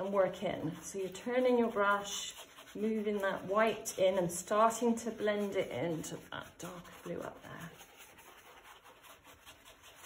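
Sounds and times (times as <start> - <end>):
dry brush rubbing on paper: 0.0 - 10.0.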